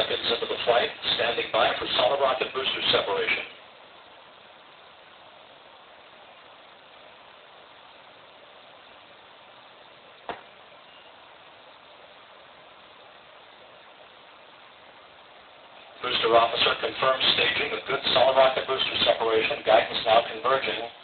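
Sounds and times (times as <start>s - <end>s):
broadcast audio hiss: 0.0s - 21.0s.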